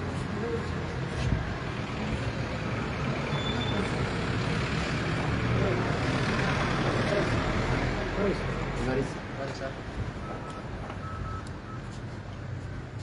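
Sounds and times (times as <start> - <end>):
motor vehicle rumble: 0.0 - 13.0.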